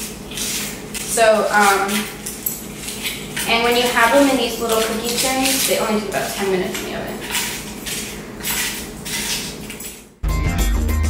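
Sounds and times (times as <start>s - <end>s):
plastic packet rustling: 0.0s - 10.2s.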